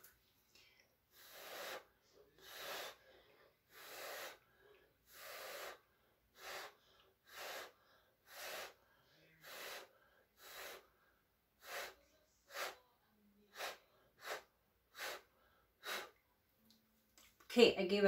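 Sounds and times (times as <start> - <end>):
puffs of breath blown by mouth: 1.1 - 12.8, 13.5 - 16.2.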